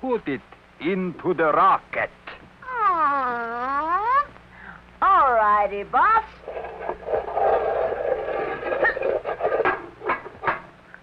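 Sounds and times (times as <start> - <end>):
metal hatch rattling and scraping: 6.4 - 10.7.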